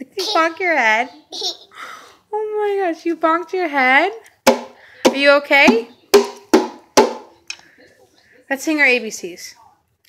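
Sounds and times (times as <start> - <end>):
sharp knocks on resonant object: 4.5 - 7.3.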